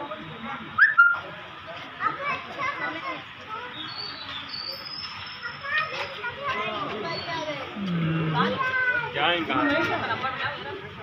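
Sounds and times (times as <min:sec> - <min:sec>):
men talking and calling out: 0:05.2 - 0:11.0.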